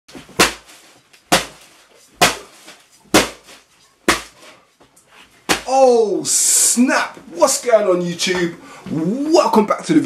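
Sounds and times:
bat whacking clothes on bed: 0.1 - 4.6.

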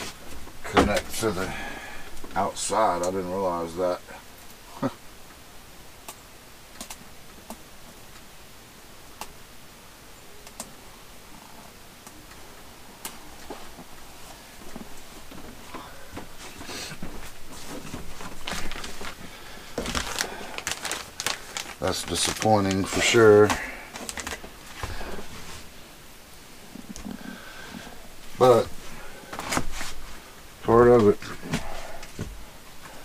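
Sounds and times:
plastic bags rustling: 13.2 - 25.9, 26.6 - 33.0.

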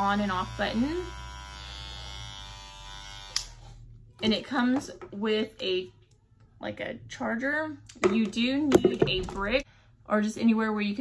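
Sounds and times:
hair clippers buzzing: 0.0 - 3.8.

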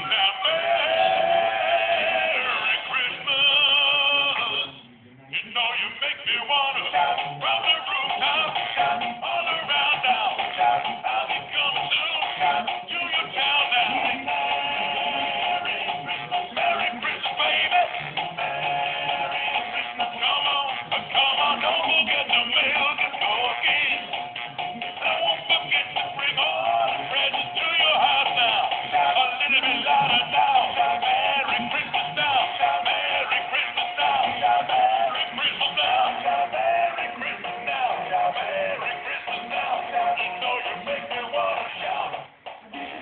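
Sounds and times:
toy singing with music: 0.0 - 43.0.

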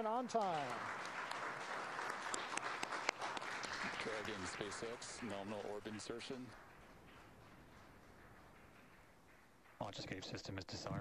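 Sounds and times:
people applauding: 0.0 - 10.3.

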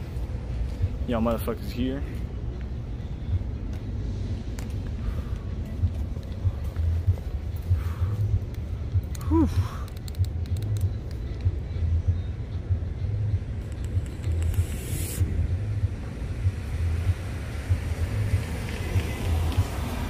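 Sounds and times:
low rumble: 2.1 - 20.0
vapour exhaled hiss: 14.4 - 15.4.

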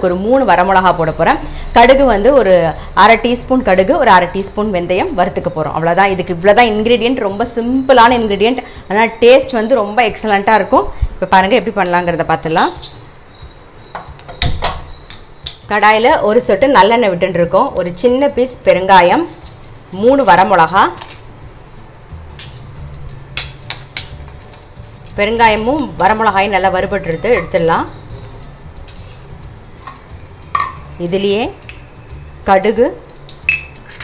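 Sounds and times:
woman speaking: 0.0 - 12.8, 15.7 - 21.0, 25.2 - 28.0, 31.0 - 31.6, 32.5 - 33.0.

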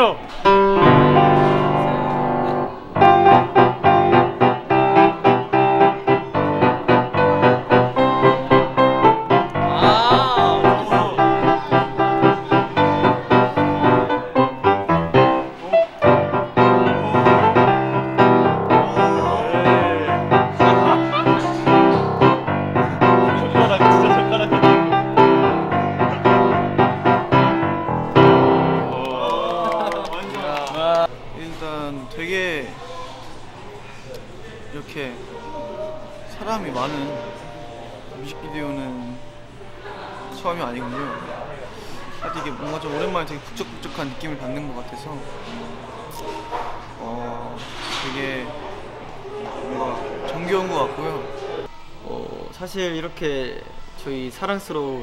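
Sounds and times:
grand piano chords: 0.0 - 29.5.

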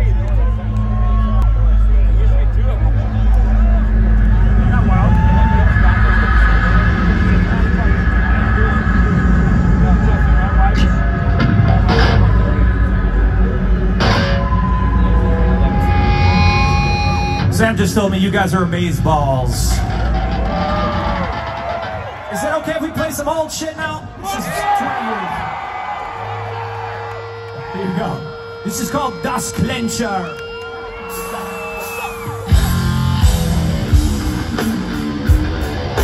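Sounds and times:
amplified electric guitar: 0.0 - 22.3, 26.2 - 36.0
low rumble: 0.0 - 22.3
crowd chattering and shouting: 0.0 - 36.0
sustained tones: 3.5 - 21.1, 27.0 - 35.3.

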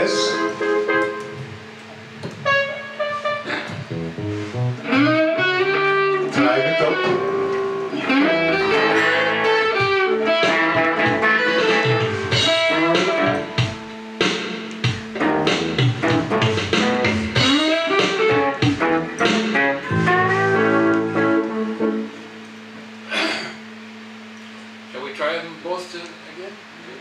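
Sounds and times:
electric guitar: 0.0 - 24.9
resonator guitar: 0.0 - 25.7.

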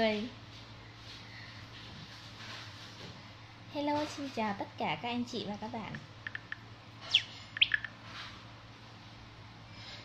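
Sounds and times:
small bird chirping: 6.2 - 8.1.

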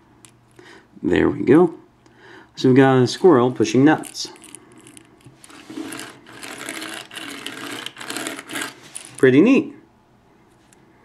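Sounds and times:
toy wheelbarrow clicking rattle: 5.5 - 9.2.

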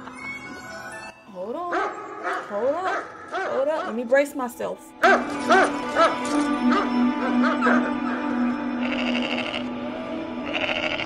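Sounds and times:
low music drone: 0.0 - 11.0
goat bleating: 8.8 - 9.7, 10.4 - 11.0.

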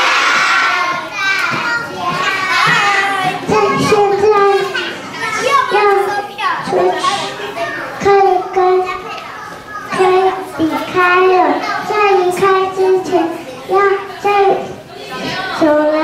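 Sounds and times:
children chattering and calling out: 0.0 - 16.0.

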